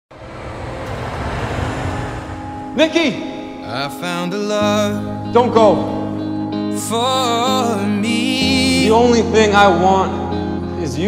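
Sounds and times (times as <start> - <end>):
steady rumbling background noise: 0.1 - 3.7.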